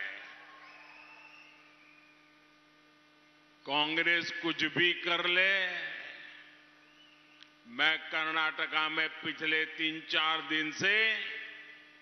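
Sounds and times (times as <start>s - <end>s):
public address system hum: 3.6s - 6.7s, 7.7s - 11.9s
man speaking over loudspeaker: 3.7s - 6.4s, 7.7s - 11.8s.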